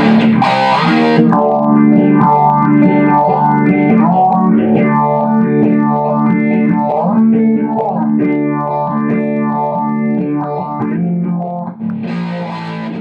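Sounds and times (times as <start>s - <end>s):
distorted electric guitar chords: 0.0s - 13.0s.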